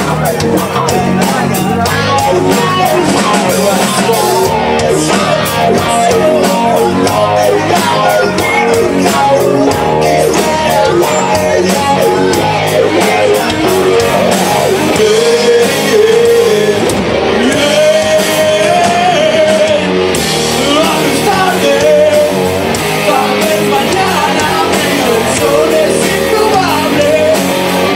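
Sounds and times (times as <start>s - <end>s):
rock band playing: 0.0s - 27.9s.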